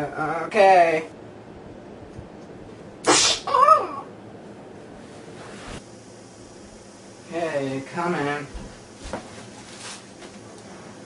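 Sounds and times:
person making hissing burst: 0:03.0 - 0:03.6
person making high-pitched cry: 0:03.3 - 0:04.1.

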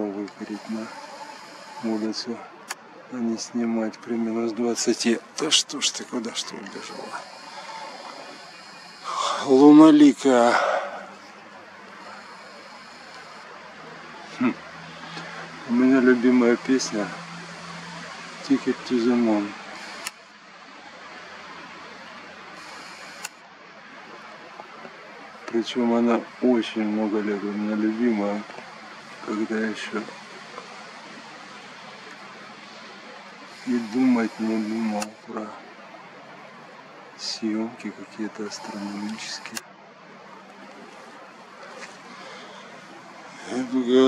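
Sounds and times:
steady background hiss: 0:00.0 - 0:44.0.

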